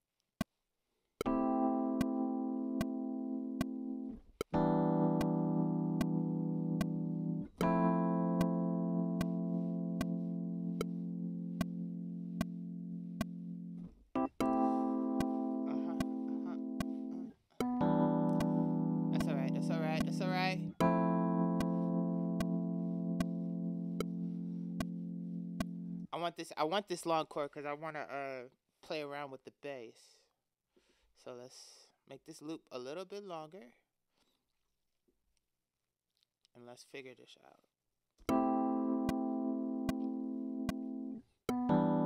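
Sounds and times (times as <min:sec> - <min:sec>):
metronome clicks: 0:01.2 - 0:07.0, 0:07.6 - 0:08.6, 0:09.2 - 0:09.4, 0:10.0 - 0:10.2, 0:11.6 - 0:12.6, 0:13.2 - 0:13.4, 0:14.2 - 0:18.6, 0:19.2 - 0:24.2, 0:24.8 - 0:25.0, 0:25.6 - 0:25.8, 0:38.3 - 0:41.8
electric piano chords: 0:01.2 - 0:26.1, 0:38.3 - 0:42.0.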